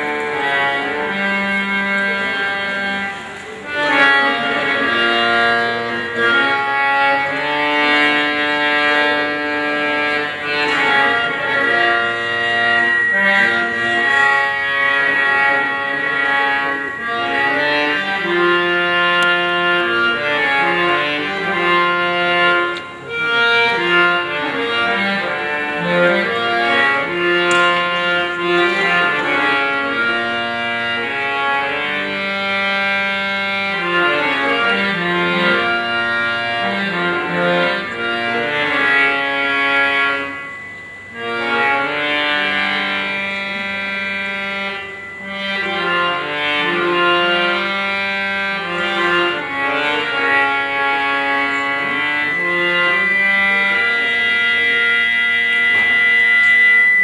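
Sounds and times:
harmonium melody: 0:00.0 - 0:57.0.

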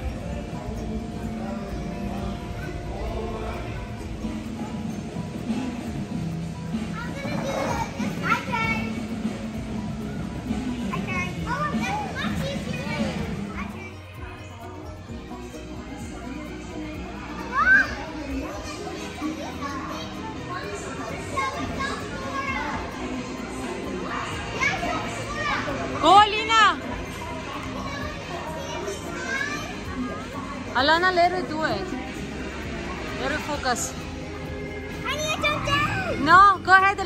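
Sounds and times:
background music: 0:00.0 - 0:37.0
children playing and calling out: 0:00.0 - 0:37.0
children shouting at play: 0:10.9 - 0:14.6, 0:17.2 - 0:26.0, 0:27.3 - 0:30.7, 0:34.9 - 0:36.3.

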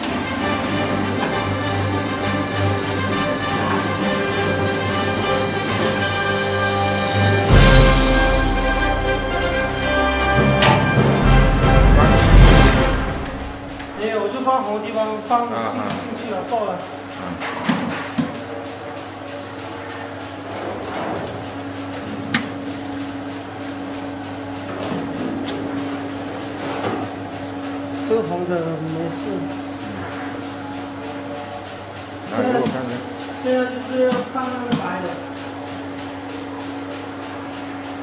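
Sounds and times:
electrical machine hum: 0:00.0 - 0:38.0.

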